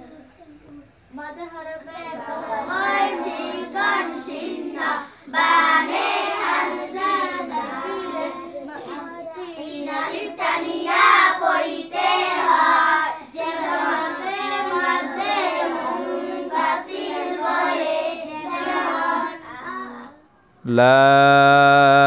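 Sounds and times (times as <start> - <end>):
girl chanting recitation: 0.0 - 20.4.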